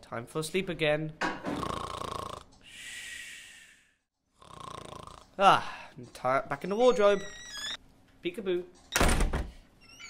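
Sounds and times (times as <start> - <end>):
person snoring: 1.5 - 5.9.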